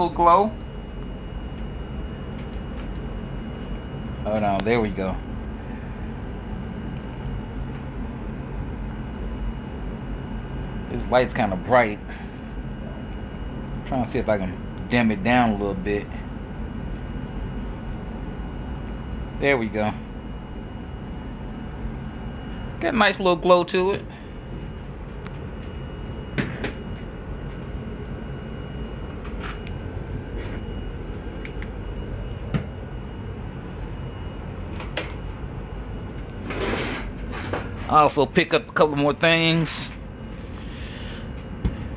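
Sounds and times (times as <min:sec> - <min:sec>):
steady low hum: 0:00.0 - 0:41.9.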